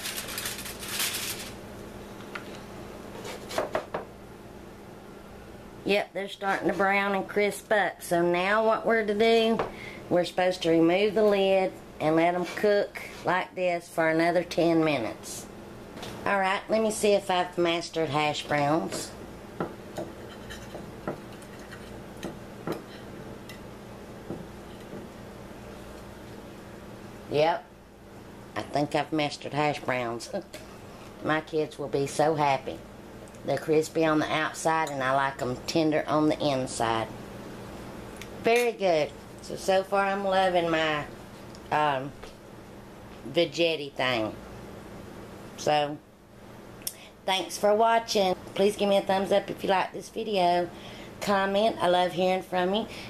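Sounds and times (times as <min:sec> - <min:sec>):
aluminium foil crinkling: 0:00.0 - 0:01.6
faint steady hum: 0:00.0 - 0:53.0
spatula scraping and tapping griddle: 0:19.9 - 0:23.6.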